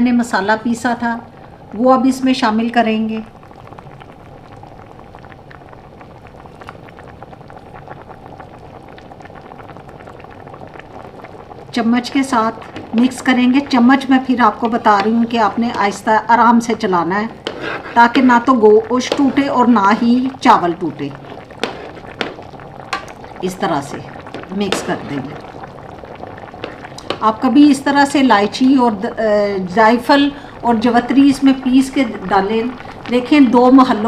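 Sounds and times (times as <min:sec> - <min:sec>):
pot boiling with bubbling: 0:00.0 - 0:34.0
faint liquid hiss: 0:01.2 - 0:34.0.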